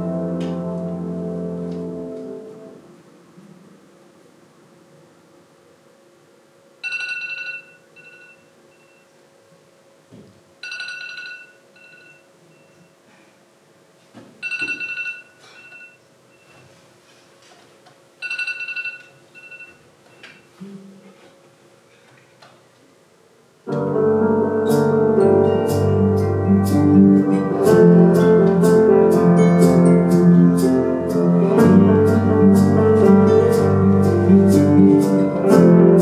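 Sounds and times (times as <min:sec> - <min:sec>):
phone alarm chime: 0:06.8 - 0:09.1, 0:10.6 - 0:12.9, 0:14.4 - 0:16.6, 0:18.2 - 0:19.8
short faint beeps: 0:08.0 - 0:09.2, 0:11.8 - 0:13.0.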